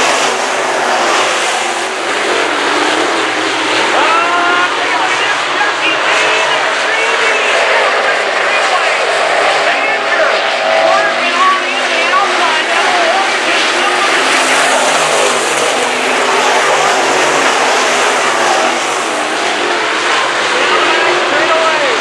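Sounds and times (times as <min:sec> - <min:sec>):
race car engines roaring: 0:00.0 - 0:22.0.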